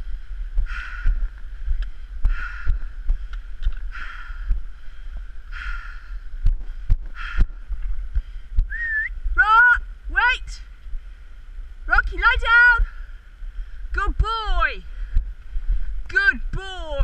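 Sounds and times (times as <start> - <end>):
person breathing hard: 0.0 - 8.7, 12.8 - 13.9
wind rumbling on microphone: 0.0 - 17.0
trekking poles clicking on rock: 0.7 - 4.6.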